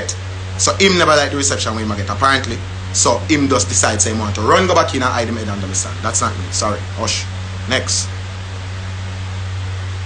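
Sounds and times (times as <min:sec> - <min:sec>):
even hiss: 0:00.0 - 0:10.0
steady low hum: 0:00.0 - 0:10.0.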